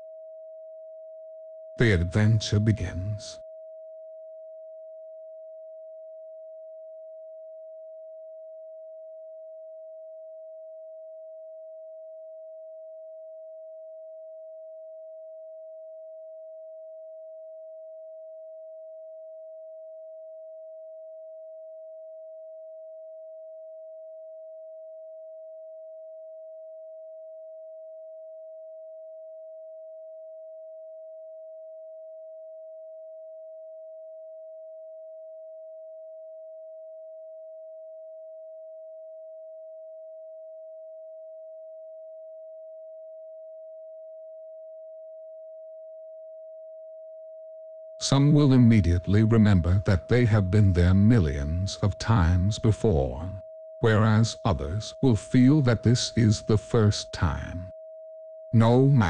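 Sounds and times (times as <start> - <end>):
pure sine tone: 0.0 - 59.0.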